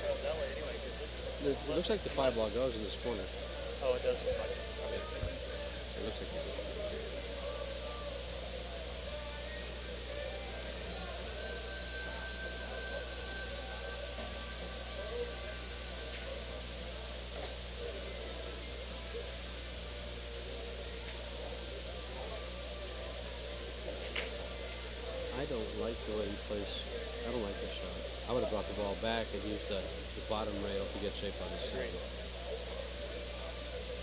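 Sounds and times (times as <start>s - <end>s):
faint background music: 0.0s - 34.0s
low electrical hum: 0.0s - 34.0s.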